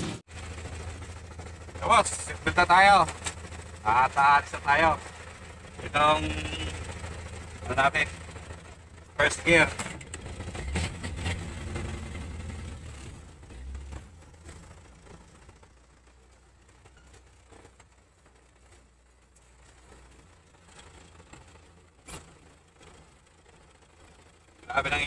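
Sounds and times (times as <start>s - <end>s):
truck engine running: 0.0s - 25.0s.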